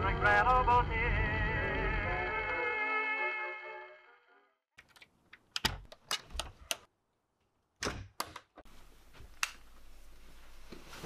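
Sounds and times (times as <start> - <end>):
door lock clicking: 4.8 - 6.9.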